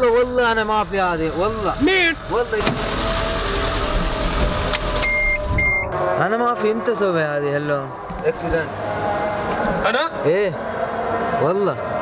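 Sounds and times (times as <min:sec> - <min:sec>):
car engine running: 0:00.6 - 0:05.6
short high-pitched beeps: 0:05.0 - 0:05.9.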